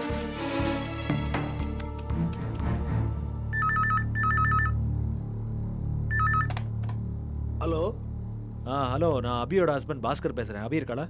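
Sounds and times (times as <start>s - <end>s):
telephone ringing in trilling bursts: 3.5s - 4.8s, 6.1s - 6.5s
low music drone: 4.8s - 11.0s.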